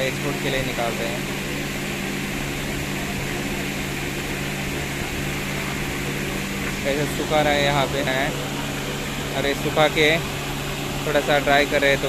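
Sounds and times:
electric fans running: 0:00.0 - 0:12.0.

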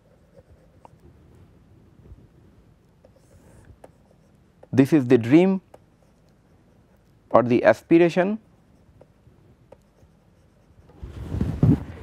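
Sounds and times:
stylus scratching on pen tablet: 0:00.0 - 0:01.0, 0:03.0 - 0:07.1, 0:08.7 - 0:11.0.

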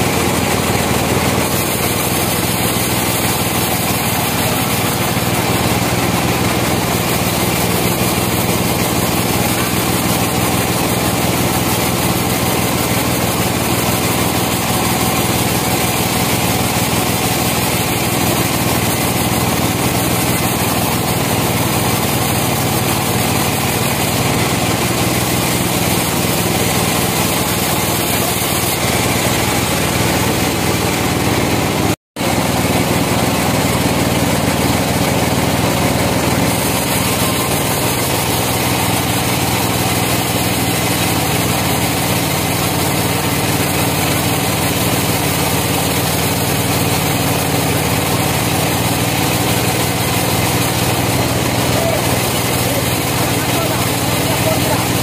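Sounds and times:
band saw cutting log: 0:00.0 - 0:55.0.

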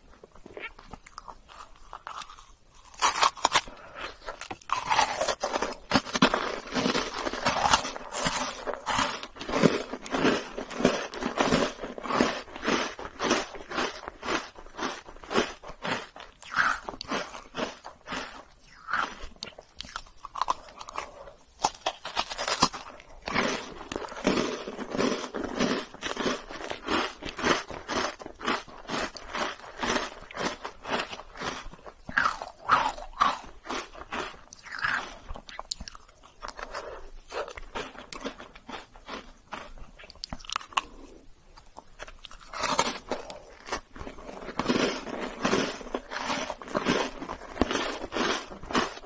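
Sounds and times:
biting and chewing: 0:00.0 - 0:49.0.

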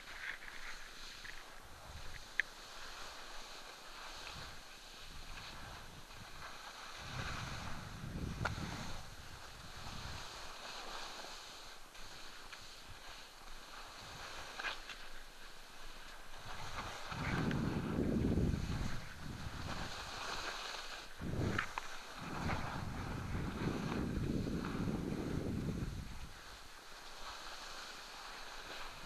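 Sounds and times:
skis sliding over snow: 0:00.0 - 0:29.0
wind rushing over microphone: 0:04.4 - 0:10.5, 0:16.4 - 0:26.6.

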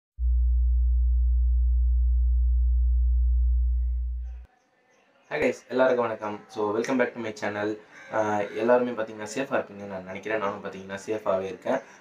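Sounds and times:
deep electronic hum: 0:00.1 - 0:04.5.

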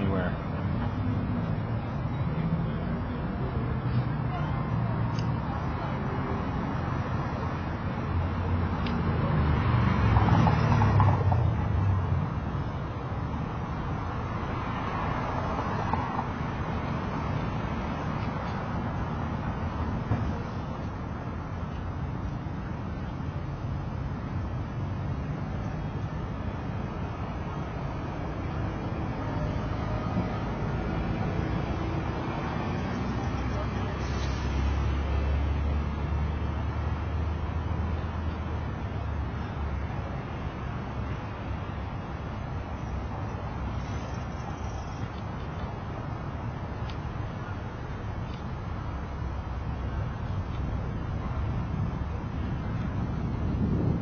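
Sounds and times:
passing vehicle rumble: 0:00.0 - 0:54.0.

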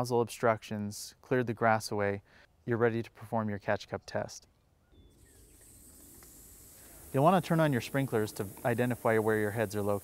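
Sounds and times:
sprinkler water spray hissing: 0:05.2 - 0:10.0.

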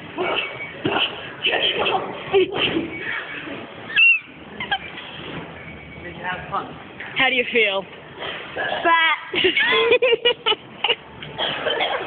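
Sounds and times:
background hubbub: 0:00.0 - 0:12.0.

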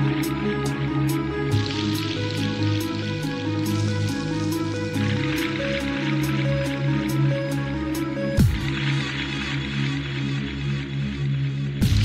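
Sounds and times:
intro music with sustained tones: 0:00.0 - 0:12.0.

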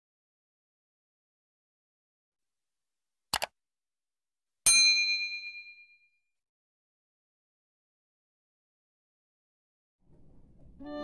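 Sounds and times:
bell ding: 0:04.7 - 0:06.2.

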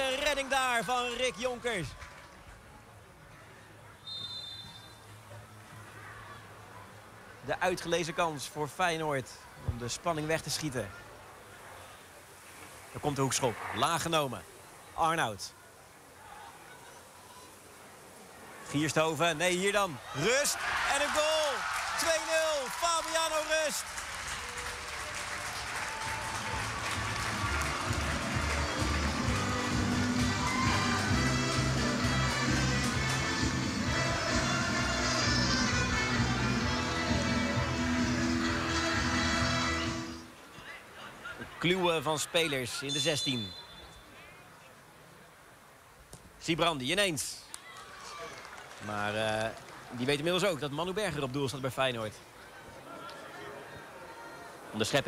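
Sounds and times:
spectators applauding: 0:20.4 - 0:34.6, 0:47.6 - 0:50.5.

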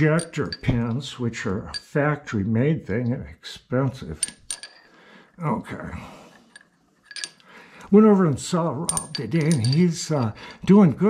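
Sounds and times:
metal pin clinking in lathe chuck: 0:04.2 - 0:04.8, 0:06.5 - 0:07.5, 0:08.9 - 0:10.4.

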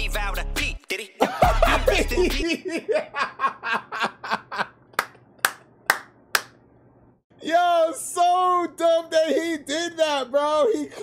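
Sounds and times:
sharp hand claps: 0:05.0 - 0:06.6.

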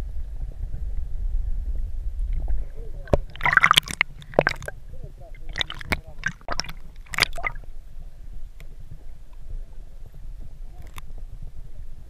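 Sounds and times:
low steady rumble: 0:00.0 - 0:12.0
water sloshing and gurgling: 0:02.4 - 0:07.9.

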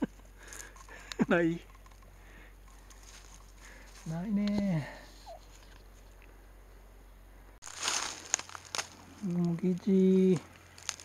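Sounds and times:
footsteps crunching on dry leaves: 0:02.8 - 0:04.4, 0:07.6 - 0:11.0.

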